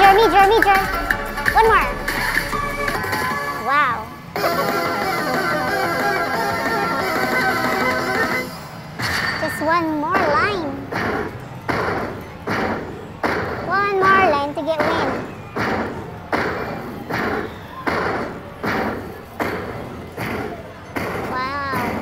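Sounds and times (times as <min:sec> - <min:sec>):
slot machine respin thuds: 0:00.0 - 0:03.6.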